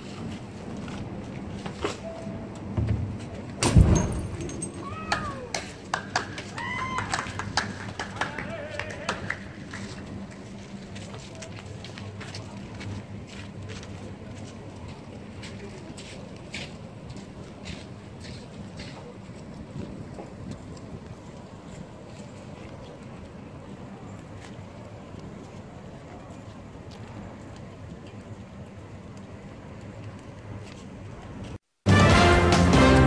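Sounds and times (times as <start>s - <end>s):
low rumble of flames: 0.0s - 32.3s
loud low bang: 3.6s - 4.8s
fire crackles: 8.5s - 31.6s.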